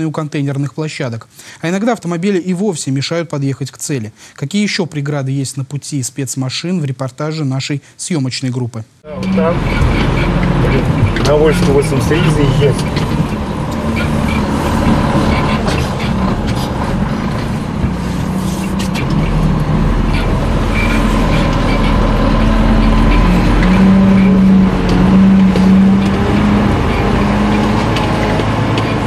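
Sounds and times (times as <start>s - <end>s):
diesel truck engine running: 9.1s - 29.0s
knocks and rattles: 9.2s - 29.0s.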